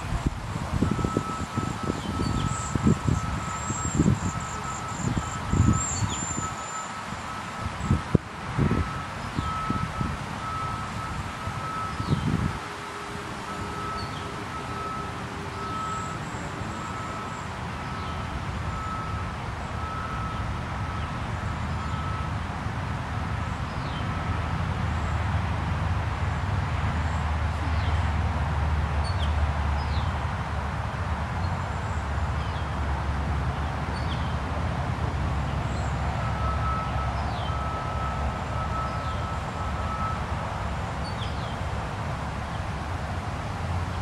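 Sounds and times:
wind buffeting microphone: 0:00.0 - 0:06.6, 0:07.6 - 0:14.4.

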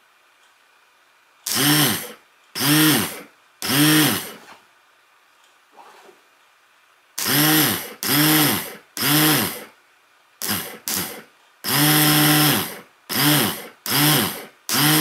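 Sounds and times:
starter motor whirring: 0:01.5 - 0:04.4.

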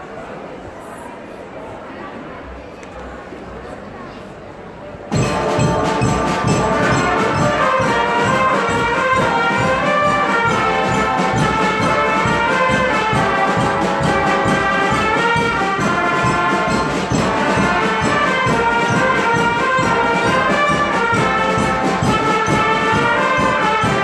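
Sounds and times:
marching band brass playing: 0:05.1 - 0:24.0.

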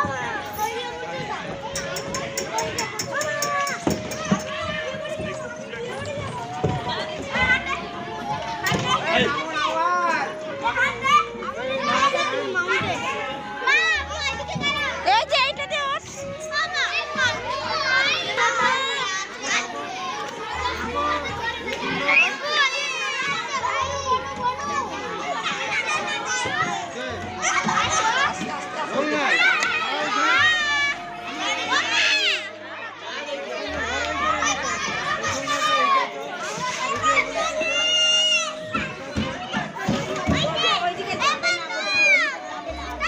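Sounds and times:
children shouting and squealing: 0:00.0 - 0:43.0.

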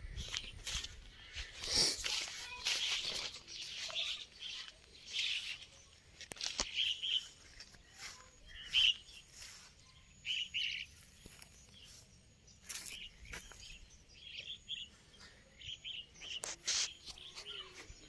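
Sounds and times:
small birds chirping: 0:00.0 - 0:18.0.

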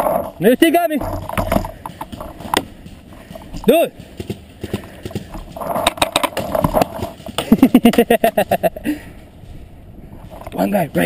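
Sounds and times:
man laughing: 0:07.4 - 0:09.1.

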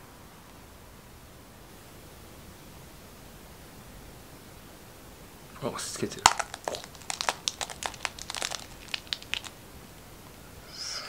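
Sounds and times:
eggshell cracking: 0:06.0 - 0:09.6.

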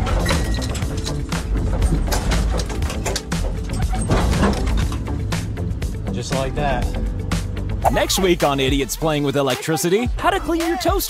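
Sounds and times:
car drivetrain clattering: 0:00.0 - 0:06.0
background music: 0:00.0 - 0:11.0.

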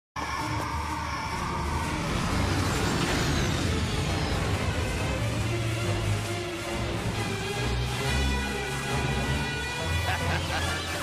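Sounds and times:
background music: 0:00.2 - 0:11.0
cartoon jet engine rumble: 0:00.8 - 0:07.4.

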